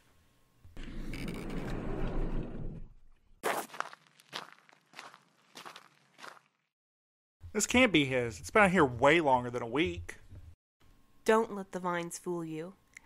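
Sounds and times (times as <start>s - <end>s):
footsteps: 3.4s - 6.6s.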